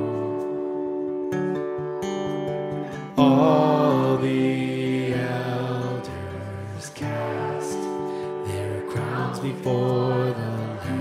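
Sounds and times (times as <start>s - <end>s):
acoustic guitar: 0.0s - 11.0s
man singing long held note: 3.2s - 11.0s.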